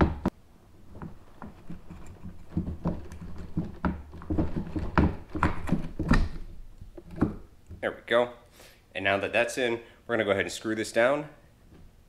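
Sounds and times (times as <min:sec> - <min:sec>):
plastic cover knocking on kayak hull: 0:02.5 - 0:06.2.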